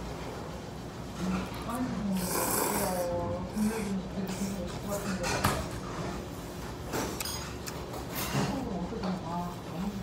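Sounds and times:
noodles being slurped: 1.5s - 3.9s.

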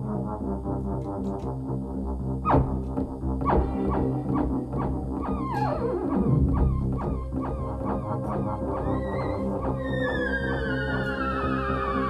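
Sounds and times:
low steady drone: 0.0s - 12.0s
theremin melody: 2.5s - 12.0s.

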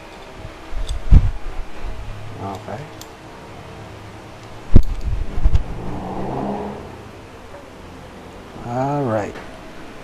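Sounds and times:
low engine-like hum: 0.8s - 10.0s.

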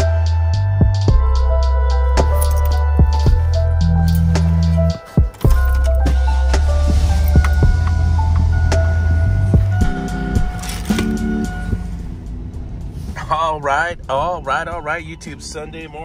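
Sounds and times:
music with heavy bass and drums: 0.0s - 13.0s.

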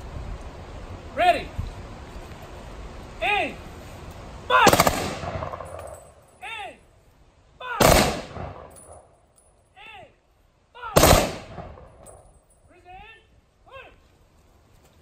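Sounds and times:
shouted command: 3.2s - 3.6s, 4.5s - 4.9s, 6.4s - 6.8s, 7.6s - 8.0s, 9.8s - 11.1s, 12.7s - 14.0s
rifle volleys with echo: 4.6s - 6.2s, 7.8s - 9.1s, 11.0s - 12.2s.

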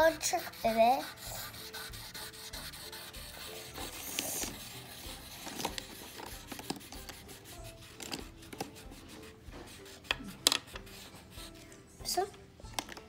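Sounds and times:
crayon scribbling on paper: 0.0s - 12.2s.

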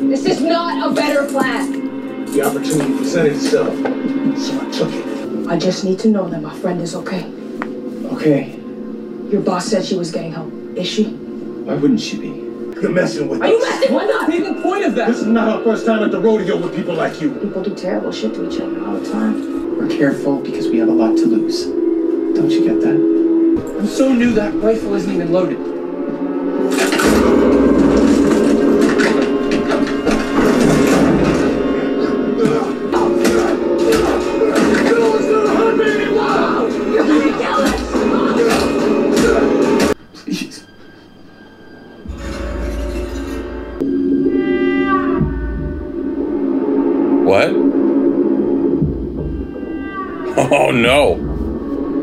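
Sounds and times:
eerie falling music tones: 8.6s - 32.4s
loud dramatic score: 42.1s - 52.0s
person speaking: 50.4s - 51.2s.

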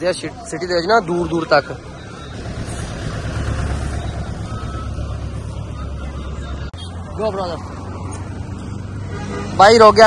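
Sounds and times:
traffic engine rumble: 0.0s - 10.0s.

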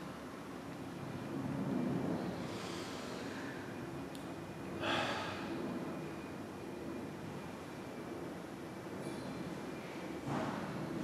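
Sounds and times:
low room hum: 0.0s - 11.0s
person breathing: 2.4s - 3.8s, 4.8s - 5.5s.

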